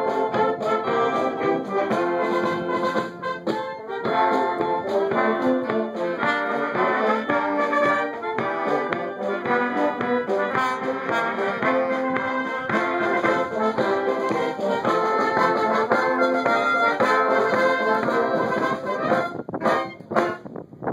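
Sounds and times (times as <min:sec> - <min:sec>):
wind band playing chords: 0:00.0 - 0:20.5.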